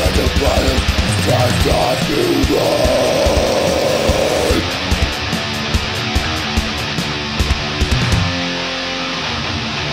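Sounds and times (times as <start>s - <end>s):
distorted electric guitar: 0.0s - 9.9s
drums: 0.0s - 9.9s
screamed vocal note: 1.3s - 4.8s.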